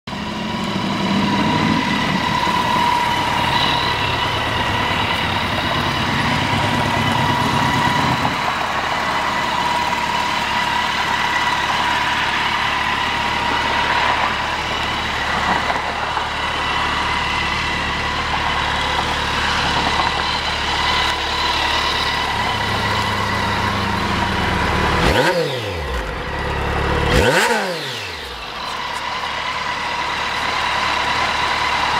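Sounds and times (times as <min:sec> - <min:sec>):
motorcycle engine idling: 0:00.1 - 0:31.9.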